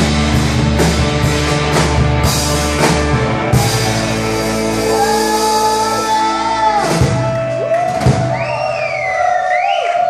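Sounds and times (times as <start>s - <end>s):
live rock band chord: 0.0s - 8.3s.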